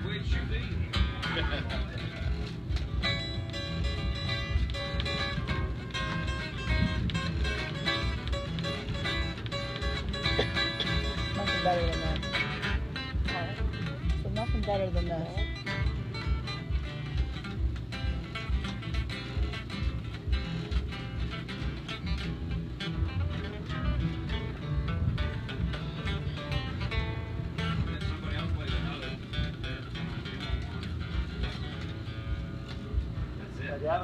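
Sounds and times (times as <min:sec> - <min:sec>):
acoustic guitar strumming: 0:00.0 - 0:34.0.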